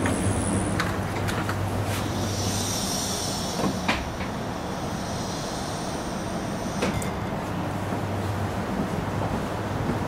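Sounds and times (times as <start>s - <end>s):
train carriage hum and hiss: 0.0s - 10.0s.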